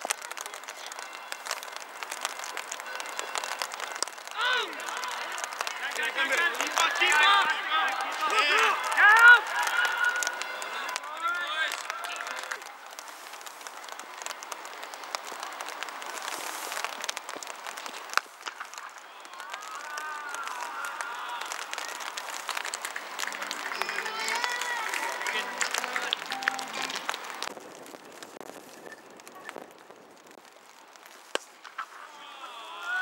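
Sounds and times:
scattered clapping: 0.0s - 28.6s
men calling out: 4.3s - 12.6s, 32.0s - 33.0s.

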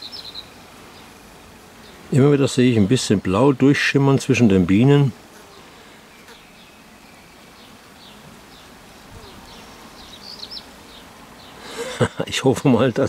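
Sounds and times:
honeybees buzzing: 0.0s - 13.0s.

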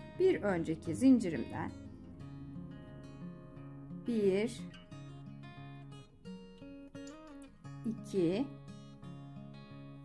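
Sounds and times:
acoustic guitar playing held notes: 0.0s - 10.0s.

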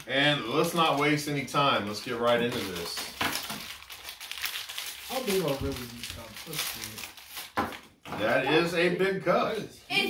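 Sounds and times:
plastic wrappers tearing and crinkling: 0.0s - 8.0s.

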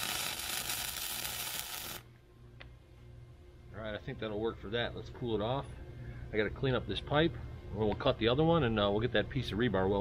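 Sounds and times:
welder arc crackling hiss: 0.0s - 2.1s.

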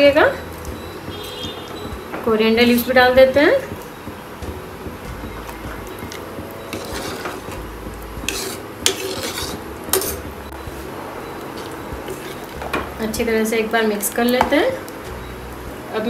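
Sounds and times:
ladle stirring rice in a pot: 5.5s - 10.4s
ladle clinking on metal: 8.2s - 10.3s.

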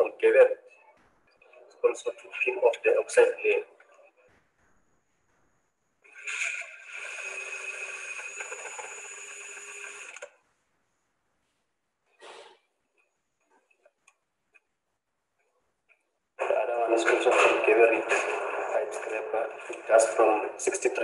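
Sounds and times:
cordless drill motor whine: 6.1s - 10.3s.

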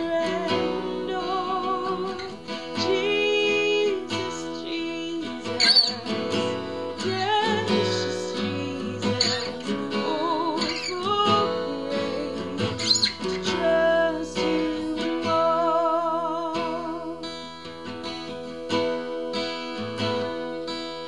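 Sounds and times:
woman singing: 0.0s - 19.0s
acoustic guitar strumming: 0.0s - 21.0s.

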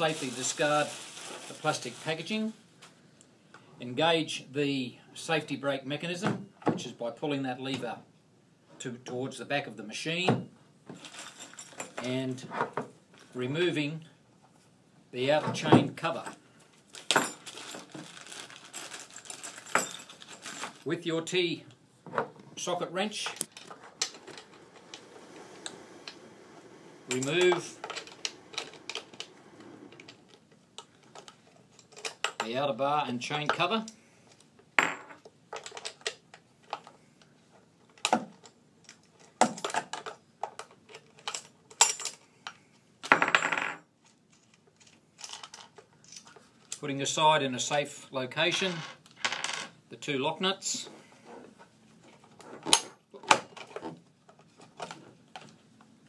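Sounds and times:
metal tool set down: 27.1s - 29.3s.

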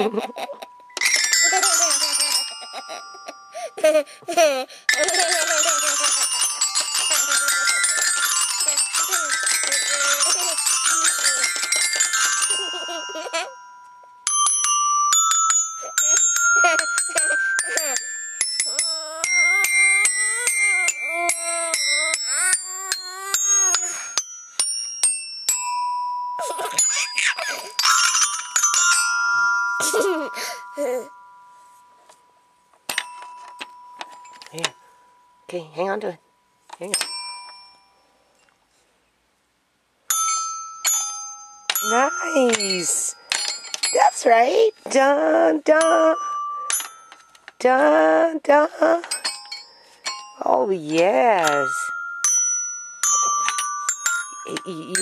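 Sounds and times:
toy glockenspiel notes ringing: 0.0s - 38.4s, 40.1s - 55.0s.

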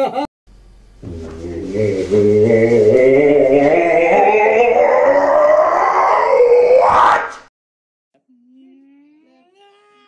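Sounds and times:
man screaming: 1.5s - 7.5s.

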